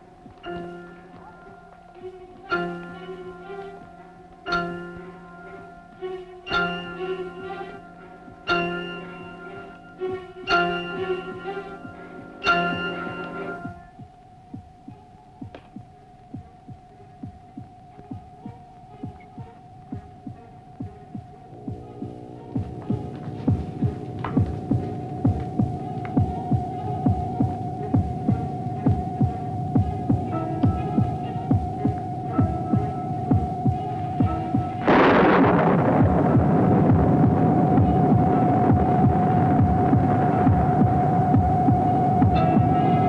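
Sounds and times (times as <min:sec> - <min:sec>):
steady high hum: 0:00.0 - 0:43.0
regular low thumps: 0:13.7 - 0:43.0
loud rushing burst: 0:34.8 - 0:40.9.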